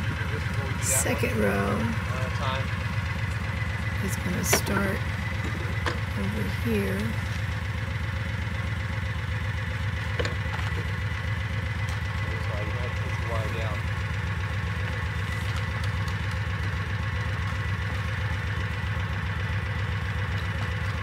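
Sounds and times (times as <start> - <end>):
vehicle engine idling: 0.0 - 21.0.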